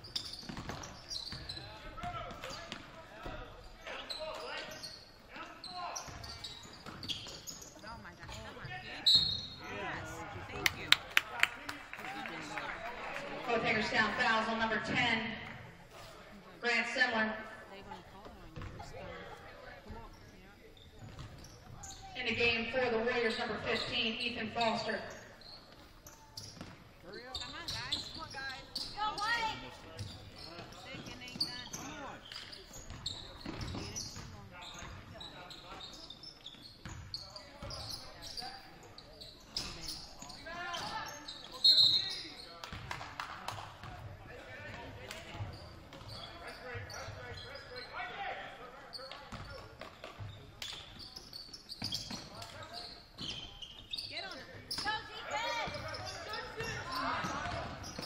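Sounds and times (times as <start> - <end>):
voices echoing in a gym: 0.0 - 58.0.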